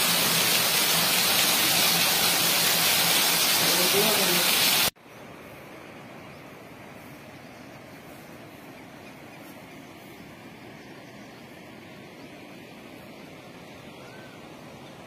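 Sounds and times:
heavy rain hiss: 0:00.0 - 0:05.0.

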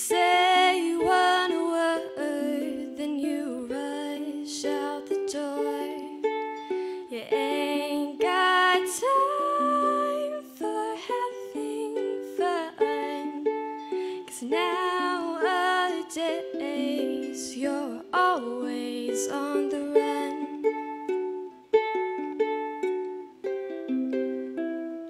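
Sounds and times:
young woman singing: 0:00.0 - 0:21.0
ukulele chords: 0:00.0 - 0:25.0.

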